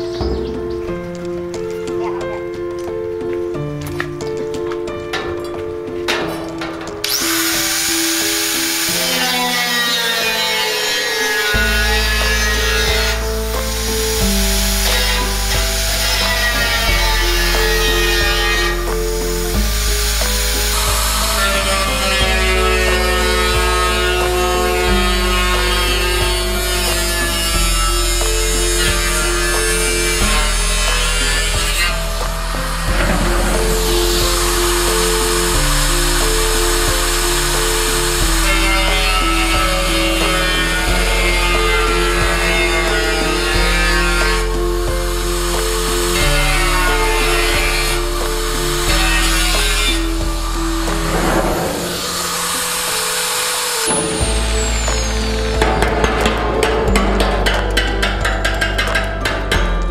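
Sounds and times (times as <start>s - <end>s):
background music: 0.0s - 59.9s
angle grinder cutting steel: 6.1s - 59.5s.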